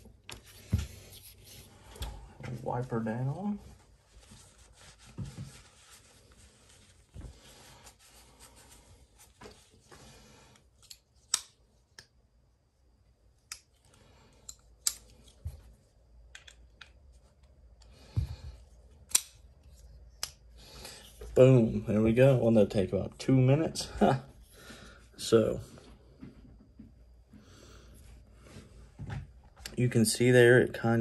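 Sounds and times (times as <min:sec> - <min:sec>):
small clicks of knife parts: 0:13.5 - 0:15.4, 0:19.1 - 0:19.4.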